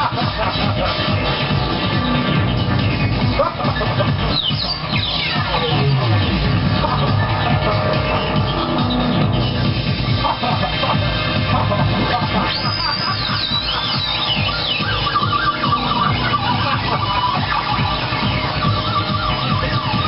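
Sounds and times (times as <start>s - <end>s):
electronic house music: 0.0s - 20.0s
wavering synth line: 1.1s - 20.0s.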